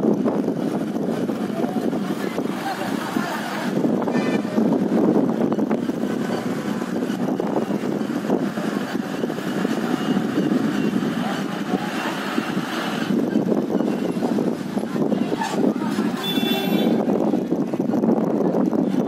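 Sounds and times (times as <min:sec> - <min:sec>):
vehicle engines running: 0:00.0 - 0:19.0
voices: 0:00.4 - 0:19.0.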